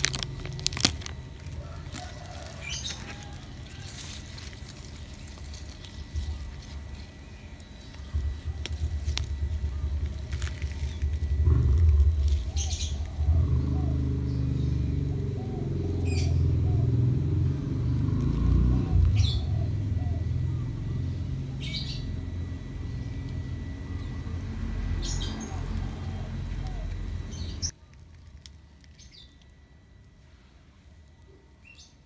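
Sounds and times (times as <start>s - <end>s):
low uneven rumble: 0.0s - 31.2s.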